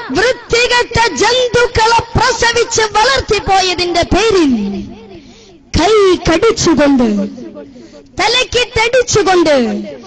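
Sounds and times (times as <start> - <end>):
boy preaching into a microphone: 0.0 - 10.0.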